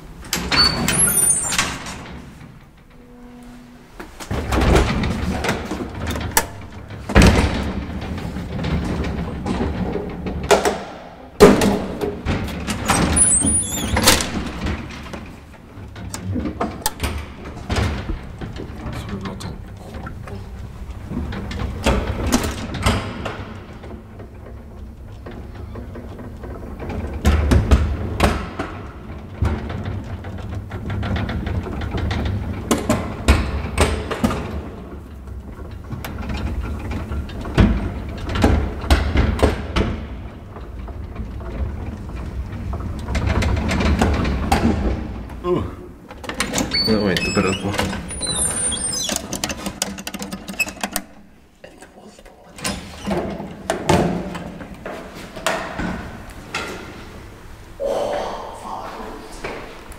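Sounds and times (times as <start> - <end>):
elevator car and gate rattling: 0.0 - 51.6
elevator hum: 55.9 - 59.9.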